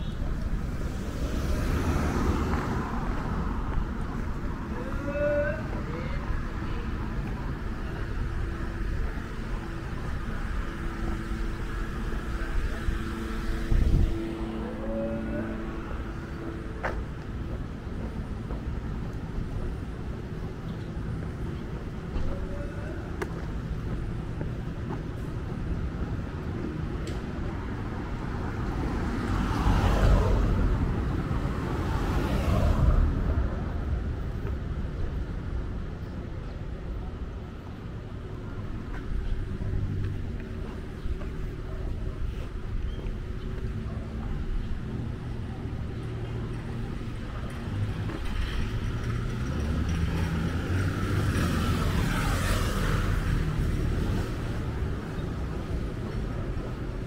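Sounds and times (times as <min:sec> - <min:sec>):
road traffic hum: 0:00.0 - 0:57.0
vehicle passing close by: 0:47.5 - 0:55.1.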